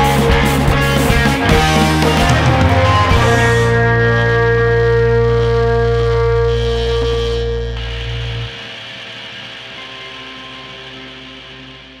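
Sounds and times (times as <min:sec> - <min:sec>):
faint ringing guitar notes: 0:00.0 - 0:12.0
held rock band chord: 0:00.0 - 0:12.0
amplifier hum and hiss: 0:01.5 - 0:12.0.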